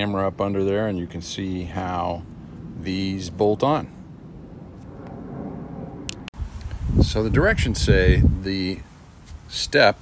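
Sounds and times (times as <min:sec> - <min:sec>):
wind rumbling on microphone: 0:00.0 - 0:09.5.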